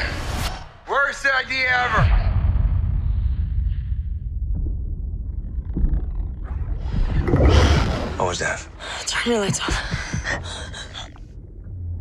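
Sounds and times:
deep underwater drone: 2.4 - 9.0, 10.0 - 12.0.

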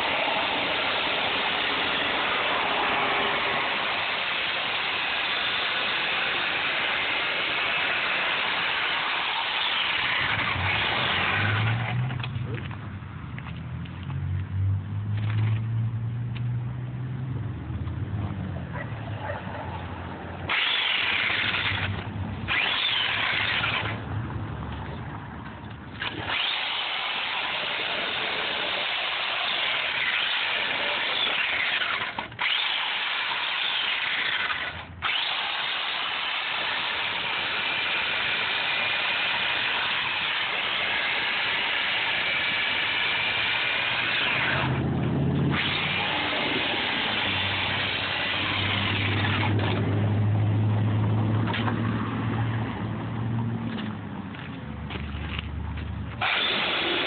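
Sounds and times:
electric chainsaw cutting foam: 0.0 - 12.4, 20.4 - 24.0, 26.0 - 50.2, 56.2 - 57.0.

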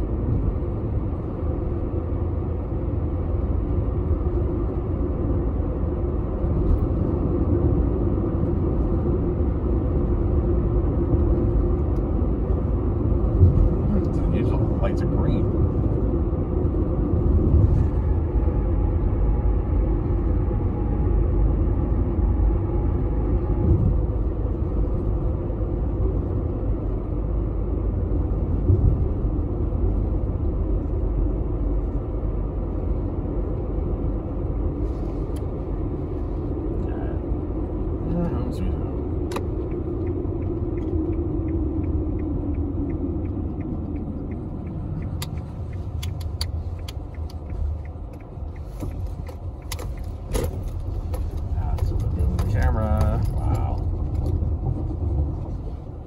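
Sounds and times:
car engine and tyre rumble: 0.0 - 56.0
quick light ticks: 39.3 - 50.5.

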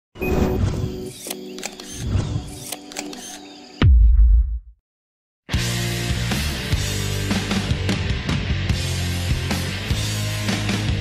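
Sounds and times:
sharp clicking effects: 1.0 - 3.6.

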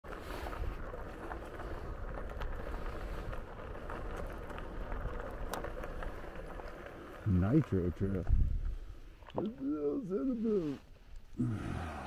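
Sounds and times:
tyres rolling on dirt: 0.0 - 12.0
small clicks and rattles: 0.1 - 8.4
wind rumbling on microphone: 0.1 - 9.2.

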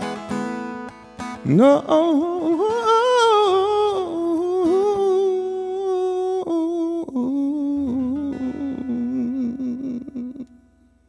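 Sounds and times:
man singing long note: 1.5 - 10.6.

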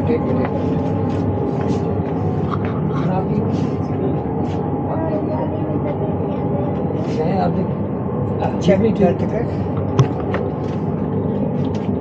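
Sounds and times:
indistinct talk of people: 0.0 - 11.9
low mechanical hum of train: 0.0 - 12.0.

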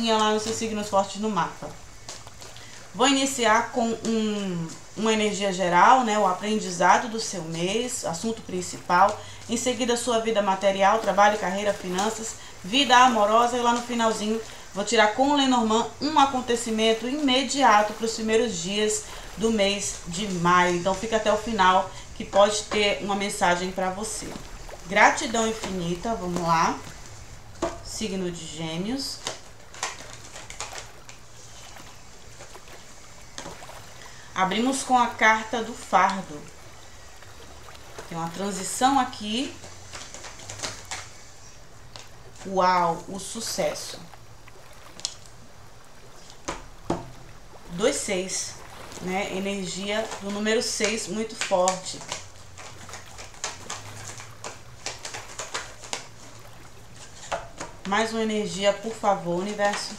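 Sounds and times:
cards clicking and snapping: 29.2 - 31.2, 39.6 - 41.3, 51.3 - 56.4.

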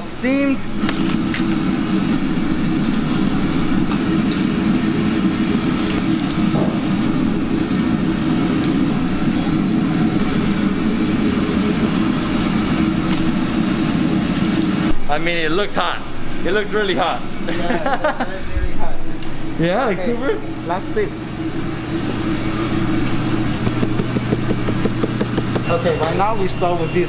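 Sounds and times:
exhaust hood running: 0.0 - 27.0
gas wok range roaring: 0.0 - 27.0.

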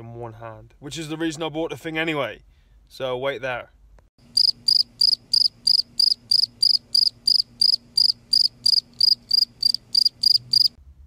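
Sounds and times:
cricket chirping: 4.4 - 10.8.

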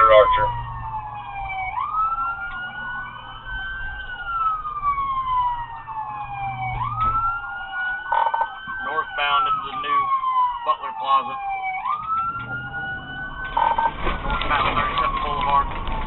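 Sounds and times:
car engine and road noise: 0.0 - 16.0
higher-pitched second siren: 0.0 - 16.0
police siren wailing: 0.0 - 16.0.

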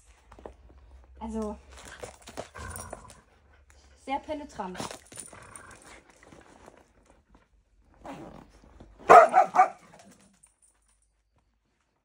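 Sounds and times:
dog barking: 9.0 - 10.0.

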